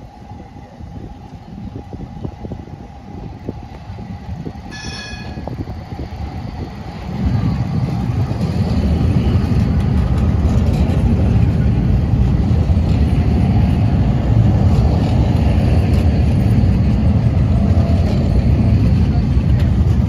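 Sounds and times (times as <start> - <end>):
train rumbling past: 0.0 - 20.0
train horn toot: 4.7 - 5.6.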